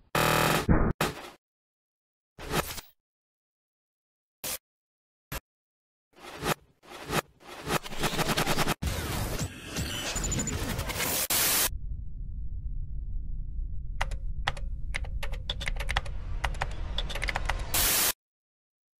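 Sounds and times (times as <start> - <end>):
low hum: 11.7 - 17.7.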